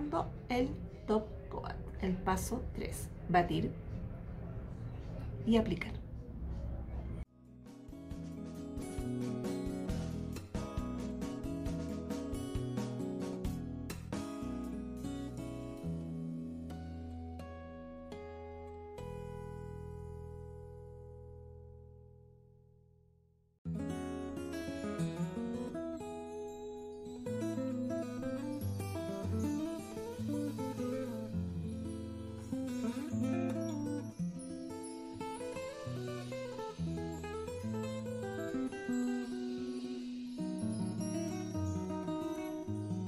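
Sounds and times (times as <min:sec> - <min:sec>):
bossa nova guitar music: 0:07.4 - 0:21.7, 0:23.7 - 0:43.0.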